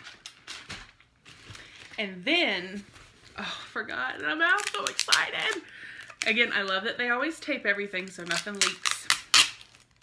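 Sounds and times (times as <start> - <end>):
packaging rustling and crinkling: 0.0 - 3.5, 4.1 - 6.8, 8.0 - 10.0.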